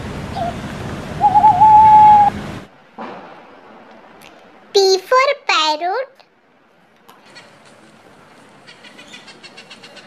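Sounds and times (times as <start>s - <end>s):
outdoor background noise: 0.0s - 10.0s
owl hooting: 0.3s - 0.6s, 1.2s - 2.3s.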